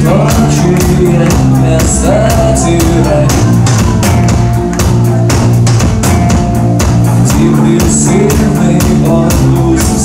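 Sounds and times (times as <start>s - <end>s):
drum kit beat: 0.0s - 10.0s
rock band playing live: 0.0s - 10.0s.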